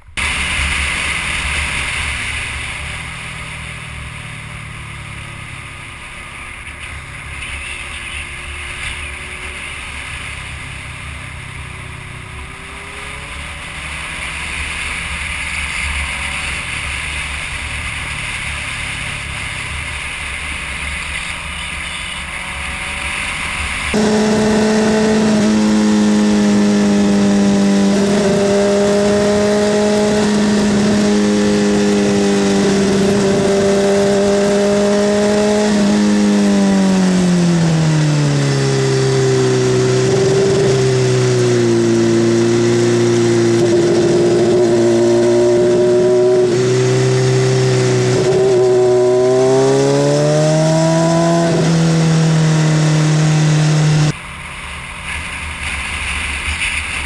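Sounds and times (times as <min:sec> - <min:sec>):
motorcycle engine running hard: 0:00.0 - 0:57.0.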